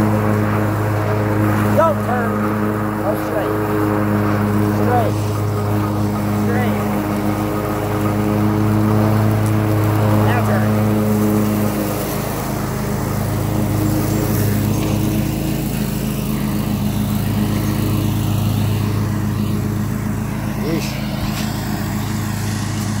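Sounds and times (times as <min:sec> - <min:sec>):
riding lawn mower engine: 0:00.0 - 0:23.0.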